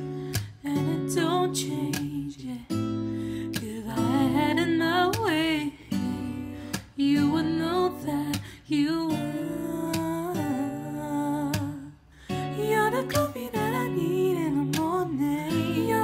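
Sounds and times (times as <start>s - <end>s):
acoustic guitar: 0.0s - 16.0s.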